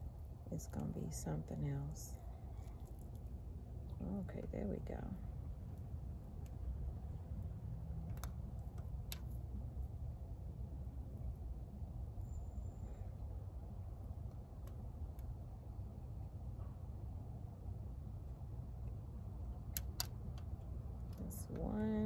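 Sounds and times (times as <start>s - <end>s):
steady low rumble: 0.0s - 22.0s.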